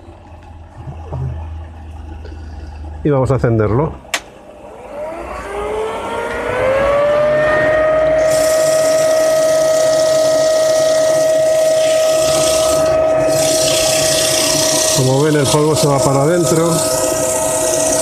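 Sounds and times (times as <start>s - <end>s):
switch click: 4.1s - 4.3s
leaf blower motor whine: 4.7s - 18.0s.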